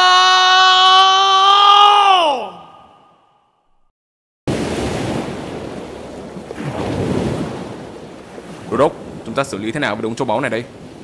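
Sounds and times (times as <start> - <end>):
long vocal cry sliding down: 0.0 - 3.0.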